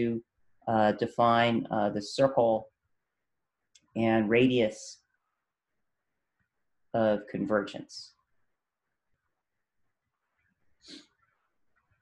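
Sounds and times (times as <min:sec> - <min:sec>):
short sniff: 0:10.8 - 0:11.2.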